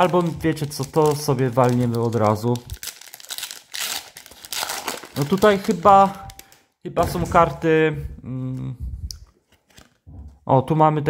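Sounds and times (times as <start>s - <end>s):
plastic wrapping crinkling and tearing: 0.0s - 6.7s.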